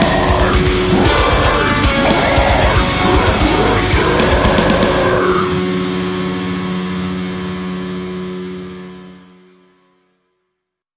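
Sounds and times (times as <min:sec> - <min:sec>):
heavy metal band playing: 0:00.0 - 0:09.1
distorted guitar chord ringing: 0:00.0 - 0:10.4.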